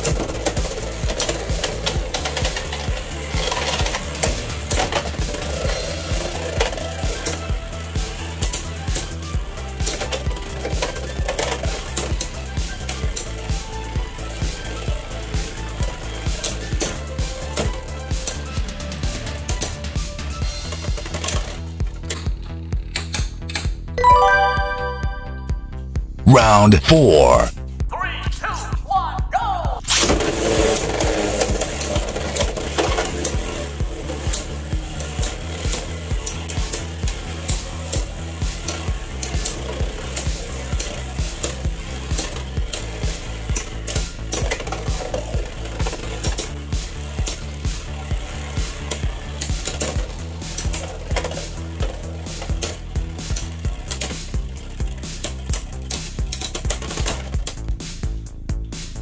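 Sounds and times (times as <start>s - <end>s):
background music with steady beat: 24.0s - 25.8s.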